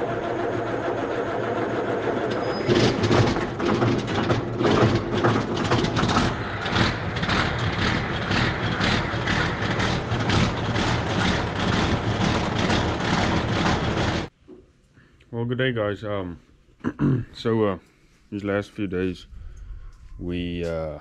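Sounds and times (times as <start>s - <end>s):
heavy engine humming: 0.0s - 14.3s.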